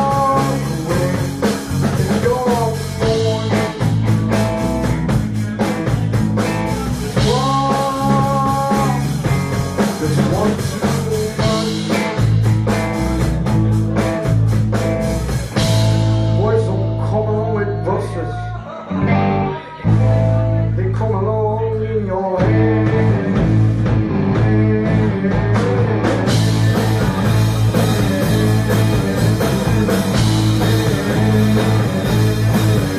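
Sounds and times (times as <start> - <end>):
bending guitar notes: 0.0 - 32.9
live rock band playing: 0.0 - 32.9.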